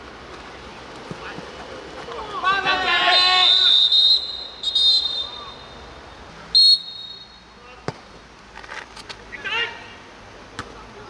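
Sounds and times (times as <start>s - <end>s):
players shouting: 2.0s - 6.0s
referee's whistle blasts: 3.0s - 5.8s, 6.5s - 7.5s.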